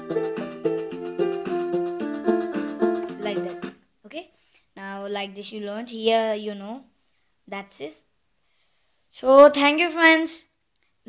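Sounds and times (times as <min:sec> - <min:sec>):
electronic keyboard melody: 0:00.0 - 0:03.8.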